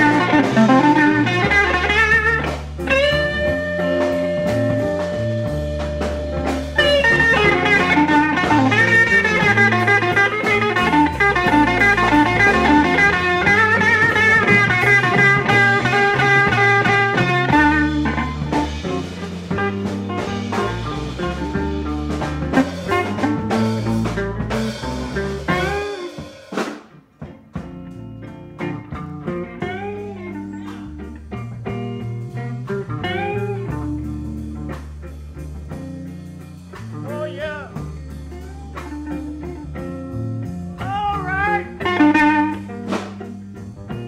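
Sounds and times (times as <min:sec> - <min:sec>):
blues band playing: 0:00.0 - 0:44.0
electric guitar lead: 0:00.0 - 0:44.0.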